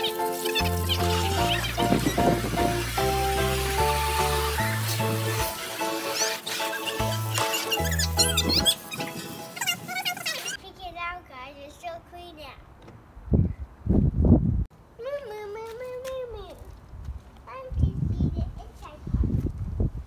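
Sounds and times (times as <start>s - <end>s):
background music with held notes: 0.0s - 9.6s
stepping bass line: 0.6s - 5.6s.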